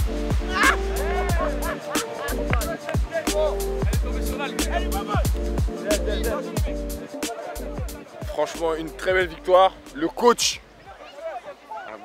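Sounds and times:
music with heavy bass and beat: 0:00.0 - 0:10.0.

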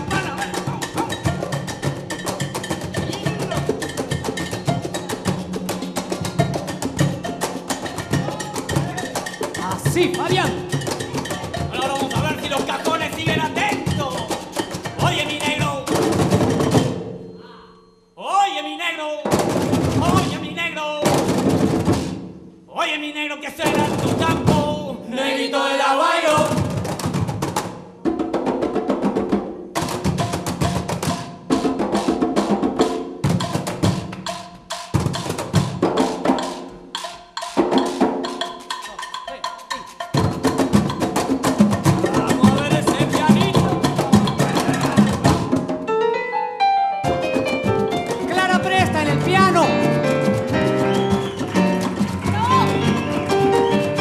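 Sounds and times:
cajon and conga drumming: 0:00.0 - 0:17.2, 0:19.2 - 0:22.6, 0:23.4 - 0:25.1, 0:26.2 - 0:46.0, 0:47.0 - 0:54.0
person calling out: 0:48.2 - 0:49.7.

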